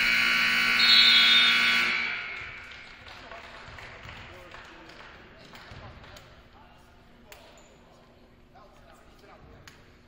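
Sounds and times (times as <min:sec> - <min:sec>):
indistinct voices in gymnasium: 0:00.0 - 0:10.0.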